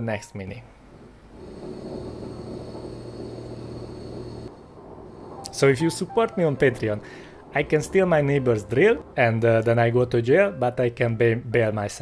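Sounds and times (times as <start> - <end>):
electric drill humming through wall: 1.4 - 4.5.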